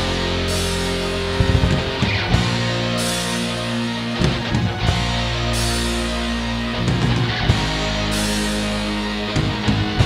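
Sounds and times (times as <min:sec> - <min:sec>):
drum kit hits: 0:00.0 - 0:08.4
electric guitar chords: 0:00.0 - 0:10.0.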